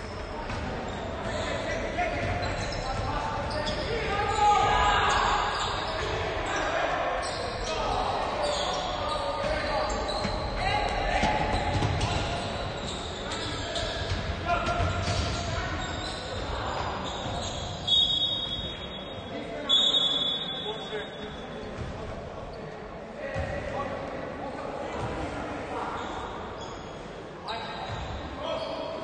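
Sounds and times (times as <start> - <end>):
players calling out: 0.0 - 21.5.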